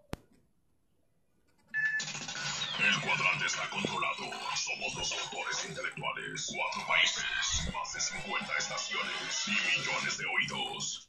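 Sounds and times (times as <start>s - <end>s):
man's voice-over: 2.8s - 11.0s.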